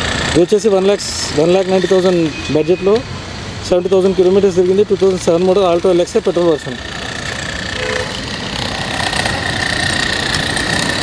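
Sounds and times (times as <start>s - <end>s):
engine running with high whine: 0.0s - 11.0s.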